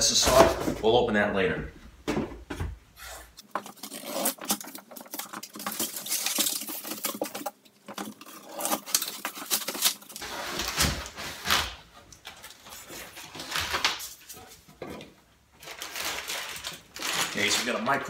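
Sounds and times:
cardboard box tape tearing: 3.4s - 11.9s.

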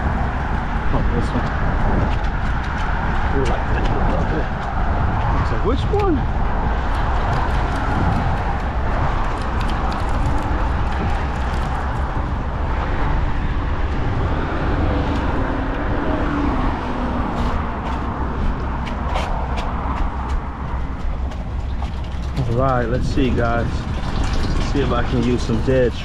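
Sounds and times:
deep outdoor rumble: 0.0s - 26.0s
wind noise on microphone: 0.0s - 26.0s.

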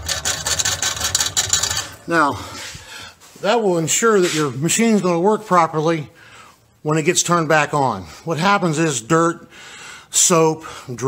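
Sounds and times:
float scraping against metal shaft: 0.0s - 2.8s.

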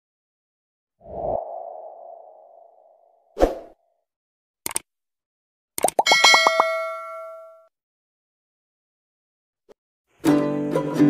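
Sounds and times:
click: 4.6s - 4.8s
notification bell chime: 6.0s - 7.6s.

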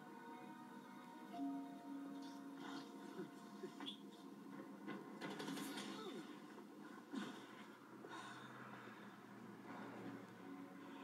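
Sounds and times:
faint tv voices and breaths: 0.0s - 11.0s.

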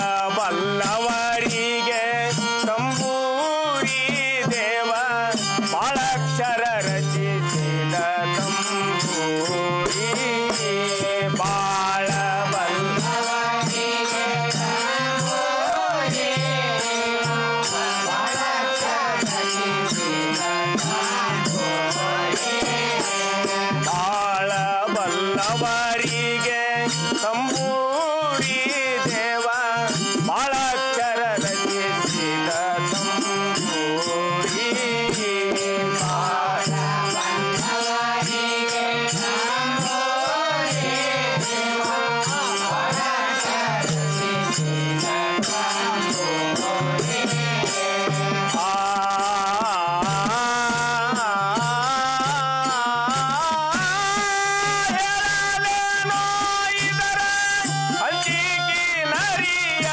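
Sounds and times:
percussion beat: 0.0s - 59.9s
person singing chant-like melody: 0.0s - 59.9s.

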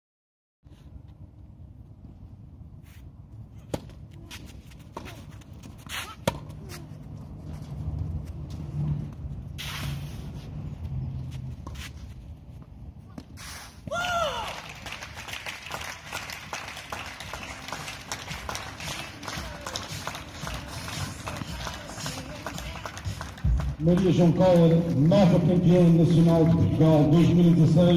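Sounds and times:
tennis racket hitting ball: 4.9s - 6.8s
person shouting: 13.9s - 14.6s
crowd applause: 14.3s - 24.0s.

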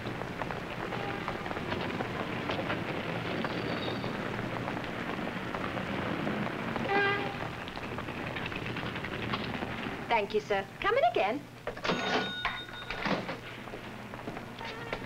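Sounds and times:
traffic noise: 0.0s - 15.0s
horn-like tone: 0.8s - 1.5s, 6.8s - 7.4s.

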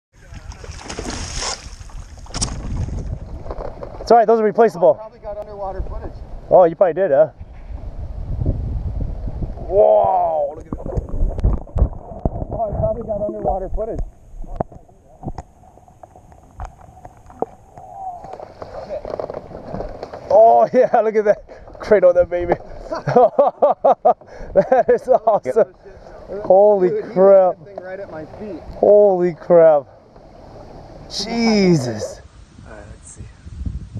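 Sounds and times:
water splashing against board: 0.2s - 4.1s
wind on microphone: 0.2s - 4.1s, 7.3s - 20.2s, 30.9s - 33.9s
open air hiss: 0.2s - 33.9s
muffled underwater rumble: 7.4s - 20.3s.

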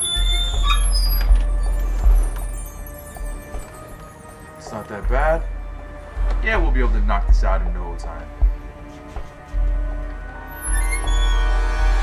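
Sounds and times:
garage door squealing open: 0.0s - 2.6s, 10.4s - 12.0s
music with low drone: 0.0s - 12.0s.

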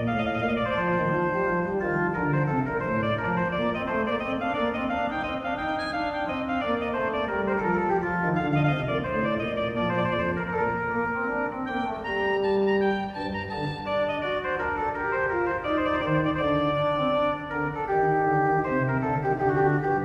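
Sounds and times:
pipe organ playing: 0.0s - 20.0s.

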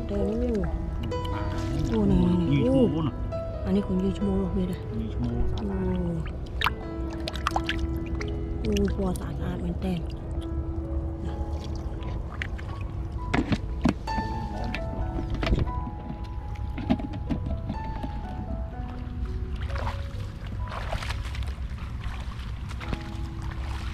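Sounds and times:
background music held notes: 0.0s - 23.9s.

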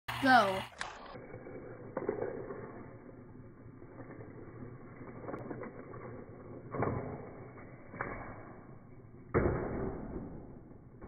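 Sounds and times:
toy car click on plastic track: 0.7s - 8.3s.

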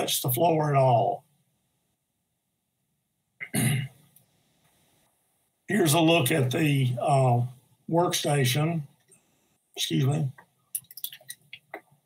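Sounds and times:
man clearing throat: 3.4s - 4.0s.

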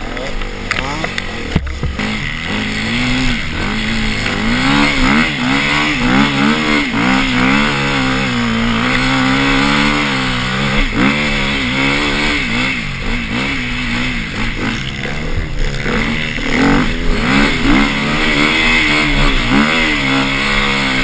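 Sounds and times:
motorcycle engine revving: 0.0s - 21.0s.

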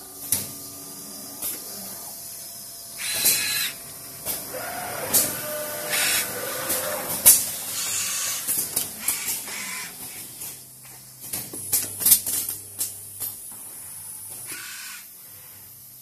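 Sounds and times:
motor whine: 0.0s - 9.9s.

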